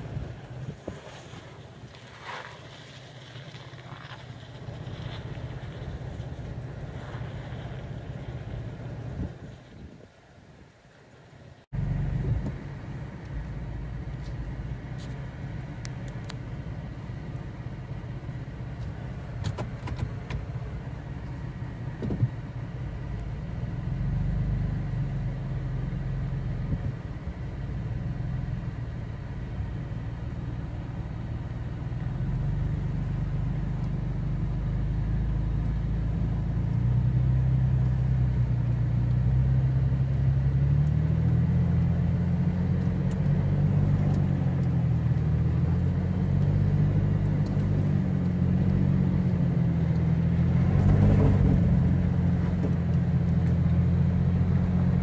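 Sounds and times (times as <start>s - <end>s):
rough engine noise: 0.0s - 10.2s, 11.6s - 55.0s
car engine running under load: 0.0s - 55.0s.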